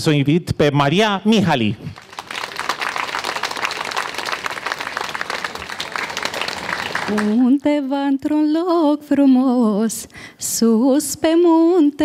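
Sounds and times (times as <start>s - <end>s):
audience applauding: 1.9s - 7.4s.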